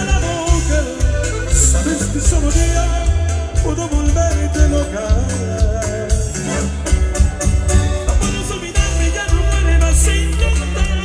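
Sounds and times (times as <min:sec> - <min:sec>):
accordion melody: 0:00.0 - 0:11.0
bass and steady beat: 0:00.0 - 0:11.0.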